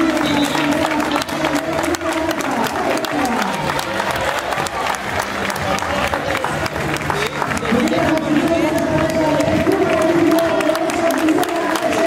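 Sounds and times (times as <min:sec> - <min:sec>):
crowd clapping steadily: 0:00.0 - 0:12.0.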